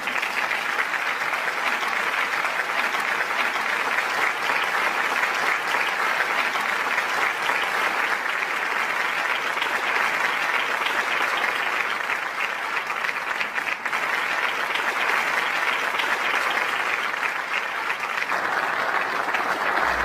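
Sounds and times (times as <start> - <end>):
crowd applauding: 0.0 - 20.0.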